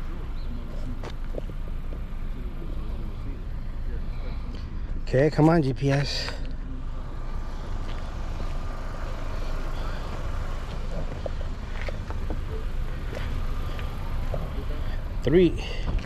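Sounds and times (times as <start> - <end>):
low outdoor rumble: 0.0 - 16.0.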